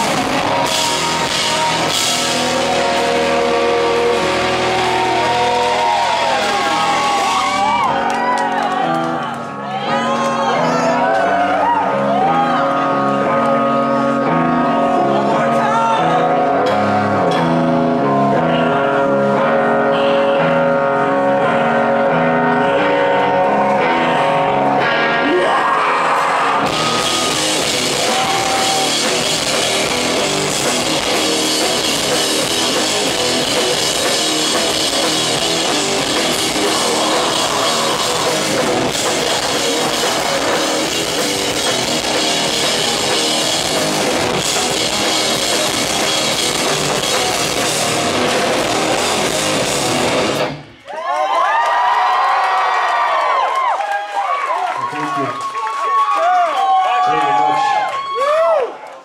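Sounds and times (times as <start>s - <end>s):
crowd cheering and whistling: 0.0s - 14.9s, 24.9s - 59.0s
rock band playing live: 0.0s - 50.8s.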